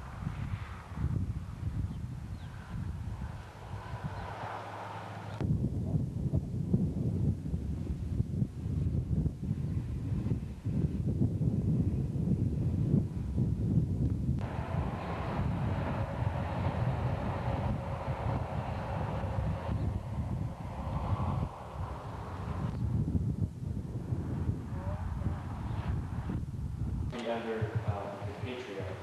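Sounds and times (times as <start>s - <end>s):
steady mechanical hum: 0.0s - 29.0s
wind buffeting microphone: 0.0s - 29.0s.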